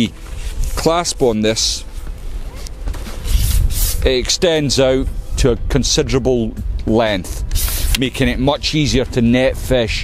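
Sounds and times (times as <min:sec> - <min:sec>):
low rumble: 0:01.8 - 0:10.0
net pole sections rubbing: 0:01.9 - 0:04.2, 0:07.3 - 0:08.1.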